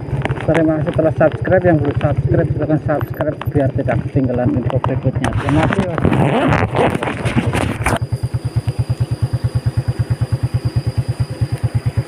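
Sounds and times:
motorcycle engine running at low revs: 0.0s - 12.0s.

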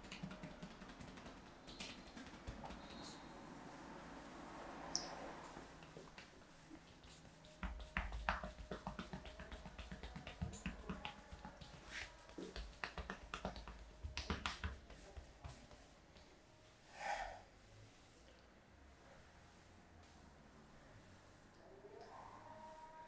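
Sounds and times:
hands tapping and pounding on back: 0.0s - 3.0s, 6.0s - 15.9s.

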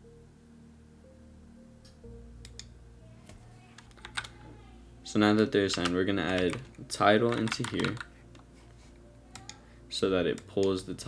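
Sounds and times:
soft background music: 0.0s - 11.0s
keyboard keystrokes: 3.8s - 4.4s, 5.6s - 8.1s.

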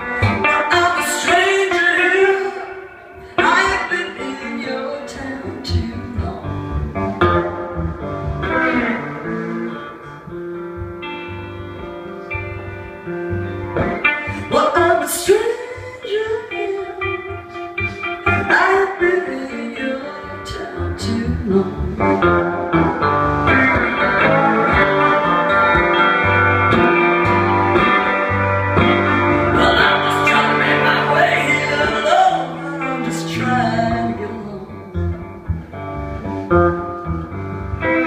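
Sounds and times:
electric guitar playing blues: 0.0s - 38.0s
bass line: 3.2s - 38.0s.

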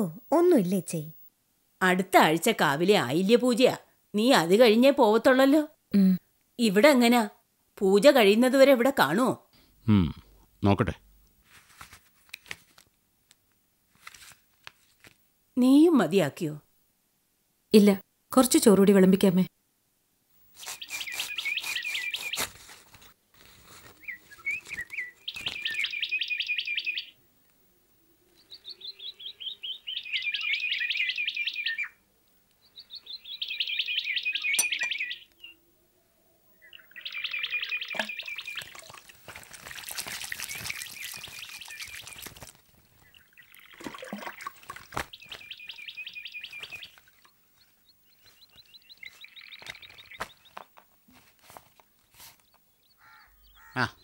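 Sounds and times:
bird singing trilled phrases: 20.7s - 22.4s, 24.0s - 27.2s, 28.4s - 32.0s, 32.6s - 35.6s, 36.5s - 39.0s, 40.4s - 44.5s, 45.1s - 50.6s, 52.8s - 54.0s.

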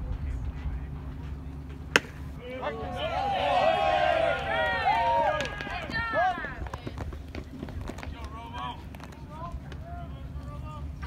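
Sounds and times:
voices yelling and cheering: 2.4s - 7.0s.

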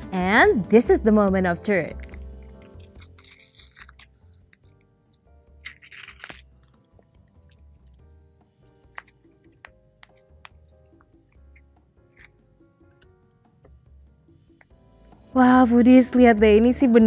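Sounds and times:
soft background music: 0.0s - 17.0s
paper baking cup crinkling: 1.9s - 4.8s, 5.4s - 8.0s.

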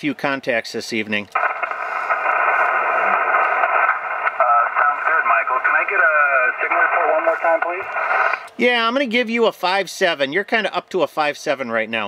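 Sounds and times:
radio band noise hiss: 1.3s - 8.8s
muffled radio voice: 4.4s - 8.5s.

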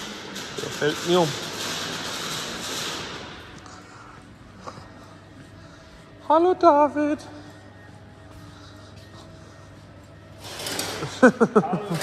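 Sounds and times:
low workshop hum: 0.0s - 12.0s
man laughing: 11.0s - 12.0s.

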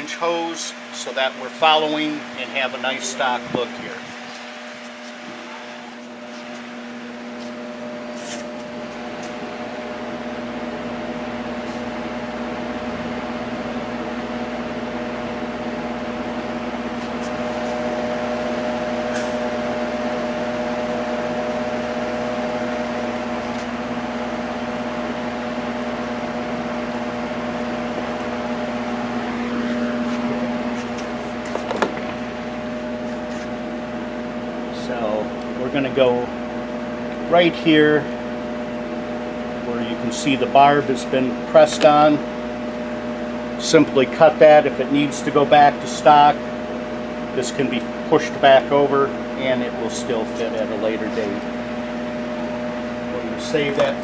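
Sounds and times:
machine hum: 0.0s - 54.0s.

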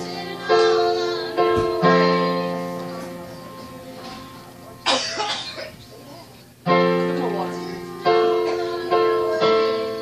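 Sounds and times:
person coughing: 4.8s - 5.8s
electronic keyboard chord: 6.7s - 10.0s.

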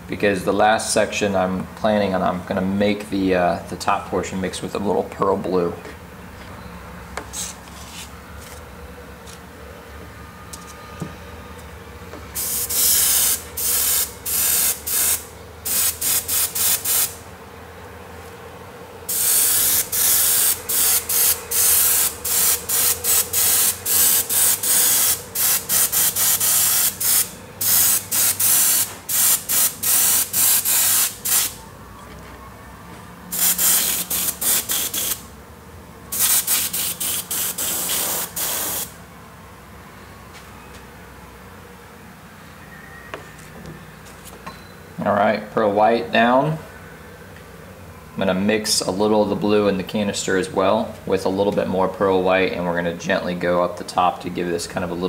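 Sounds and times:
airbrush spraying hiss: 12.3s - 17.2s, 19.1s - 31.6s, 33.3s - 35.2s, 36.1s - 39.0s.

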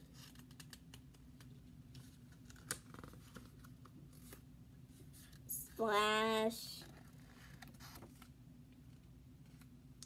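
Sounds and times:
book page turning: 6.8s - 8.3s.

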